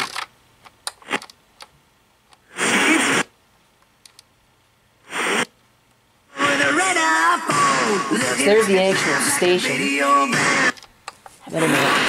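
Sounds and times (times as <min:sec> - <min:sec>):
short bursts of radio sound: 0:02.5 - 0:03.3, 0:05.1 - 0:05.5
radio station broadcast: 0:02.6 - 0:03.3, 0:07.6 - 0:10.7, 0:11.5 - 0:12.0.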